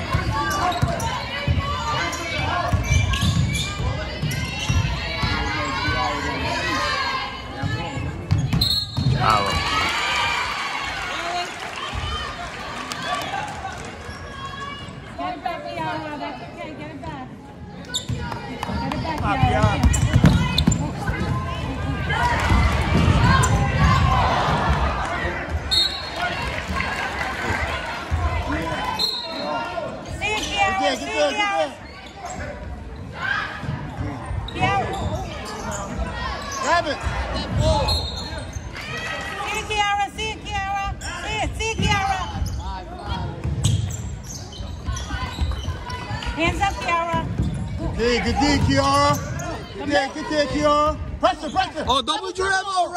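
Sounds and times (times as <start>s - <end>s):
basketball bouncing on court: 0.0s - 5.5s, 7.6s - 9.3s, 18.0s - 21.6s, 41.6s - 49.5s
voices and shouts: 0.0s - 16.9s, 17.8s - 43.6s, 44.8s - 52.9s.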